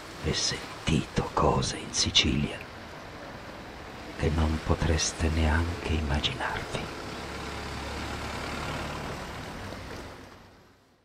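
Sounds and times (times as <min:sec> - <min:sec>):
wind: 0:00.0 - 0:11.0.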